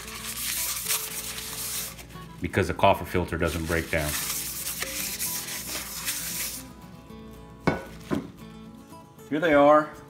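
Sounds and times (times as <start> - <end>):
coffee filter scrubbing skillet: 0.0 - 2.1, 3.4 - 6.7.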